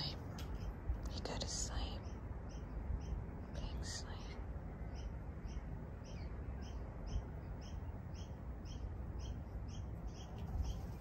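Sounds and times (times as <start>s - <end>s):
person whispering: 0.0s - 0.3s, 1.0s - 2.1s, 3.5s - 4.5s
steady low rumble: 0.0s - 11.0s.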